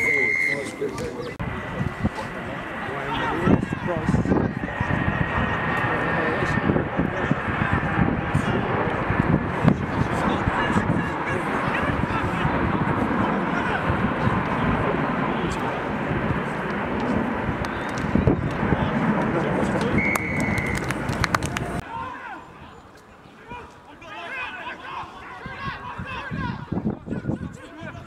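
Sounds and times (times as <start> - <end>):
referee's whistle blast: 0.0 - 0.8, 20.0 - 20.8
players calling out: 0.0 - 9.0
rumbling din of voices: 0.0 - 20.1.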